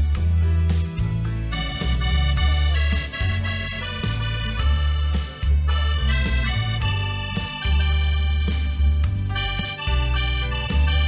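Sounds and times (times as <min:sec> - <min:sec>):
band with bass line: 0:00.0 - 0:11.0
button accordion melody: 0:01.4 - 0:11.0.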